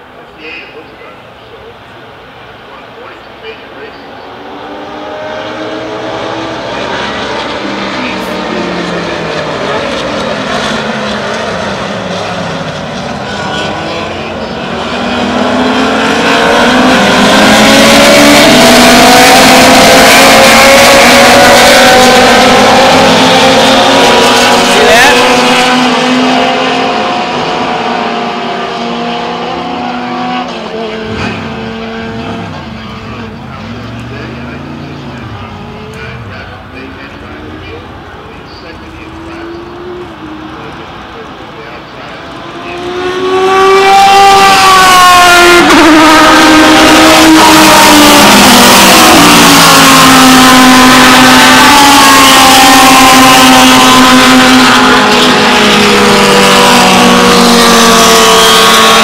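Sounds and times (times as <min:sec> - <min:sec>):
race car engines revving: 0:00.0 - 0:59.0.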